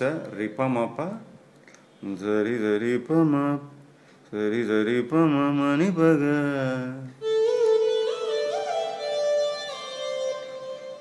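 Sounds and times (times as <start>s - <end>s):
man singing unaccompanied: 0.0s - 1.4s, 2.0s - 7.6s.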